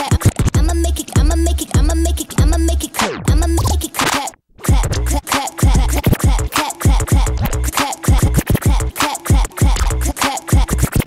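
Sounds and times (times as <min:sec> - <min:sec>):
hip-hop beat: 0:00.0 - 0:11.0
vinyl record scratching: 0:00.0 - 0:11.0.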